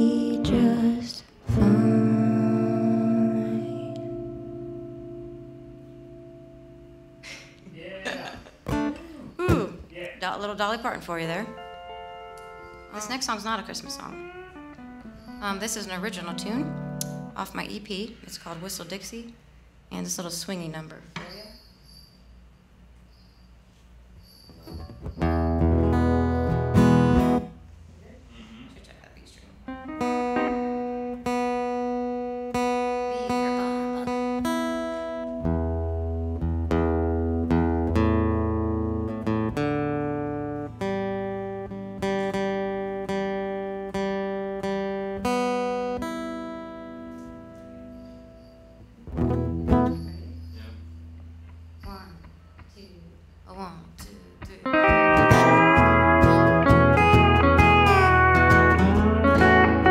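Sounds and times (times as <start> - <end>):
acoustic guitar strumming: 0.0 - 7.6, 8.6 - 9.7, 10.6 - 17.6, 24.5 - 27.7, 29.7 - 52.0, 54.6 - 59.9
pedal steel guitar notes: 0.0 - 7.6, 10.8 - 17.4, 25.0 - 27.6, 29.7 - 51.7, 54.6 - 59.9.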